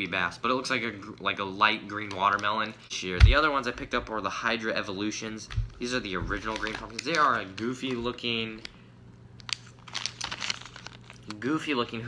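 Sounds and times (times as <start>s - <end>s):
plastic packaging crinkling: 5.6s - 8.8s, 9.4s - 11.9s.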